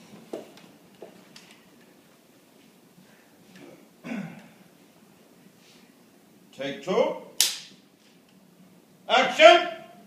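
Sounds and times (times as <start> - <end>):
sharp clap: 7.4 - 7.8.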